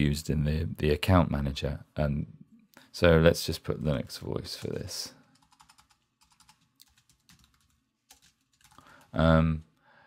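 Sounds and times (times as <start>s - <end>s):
faint typing on computer keyboard: 4.5s - 9.8s.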